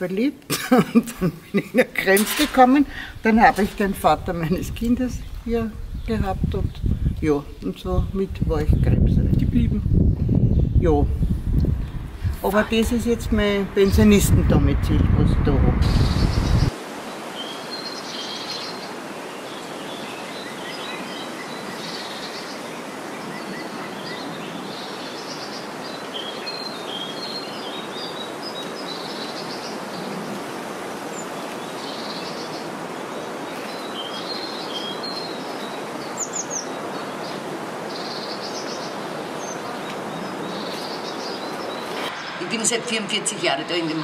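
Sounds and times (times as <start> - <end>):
outdoor background hiss: 0.0 - 44.0
small birds chirping: 2.1 - 14.3, 15.8 - 44.0.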